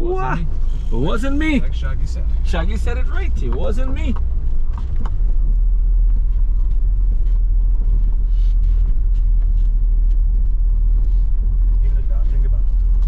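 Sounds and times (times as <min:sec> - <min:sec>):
car cabin rumble on rough road: 0:00.0 - 0:13.0.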